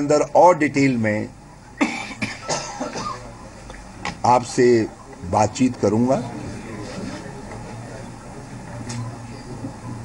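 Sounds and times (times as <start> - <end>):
man coughing: 1.8 - 3.3.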